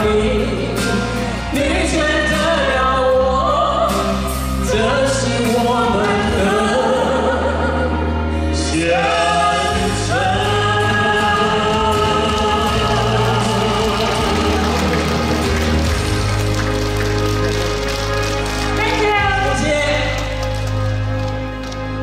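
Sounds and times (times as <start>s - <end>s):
man and woman singing a duet: 0.0s - 15.5s
backing music: 0.0s - 22.0s.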